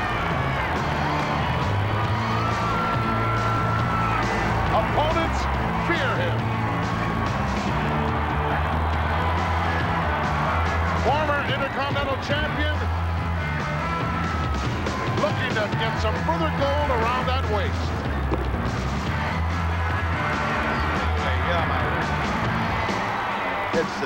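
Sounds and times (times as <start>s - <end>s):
crowd cheering and screaming: 0.0s - 24.0s.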